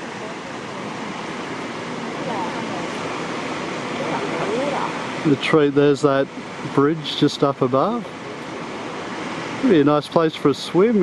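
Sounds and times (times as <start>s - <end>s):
water washing below: 0.0s - 11.0s
waterfall rushing: 0.0s - 11.0s.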